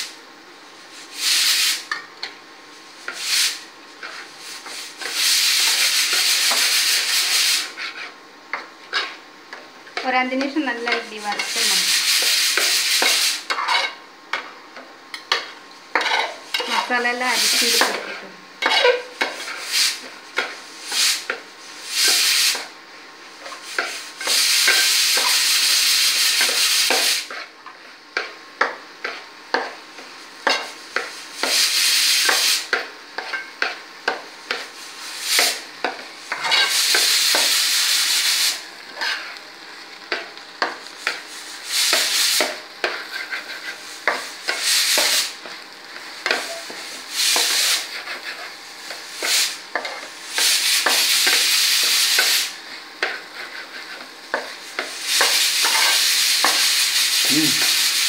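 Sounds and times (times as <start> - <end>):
metal spatula scraping rice in pot: 8.9 - 9.2, 10.9 - 14.0, 15.3 - 20.6, 36.3 - 37.6, 38.9 - 39.4, 41.9 - 45.3, 46.2 - 50.0, 53.0 - 56.6.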